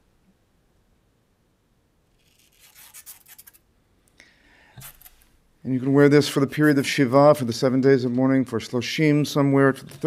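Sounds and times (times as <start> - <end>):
fabric tearing: 2.2 - 3.6.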